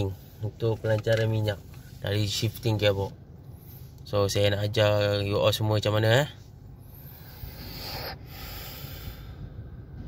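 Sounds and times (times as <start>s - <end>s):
breath or sniff: 6.8s - 9.4s.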